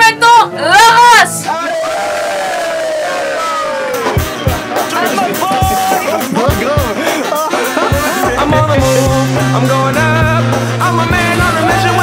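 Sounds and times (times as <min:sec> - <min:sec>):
group cheering: 0:00.8 - 0:09.1
long drawn-out shout: 0:01.1 - 0:04.2.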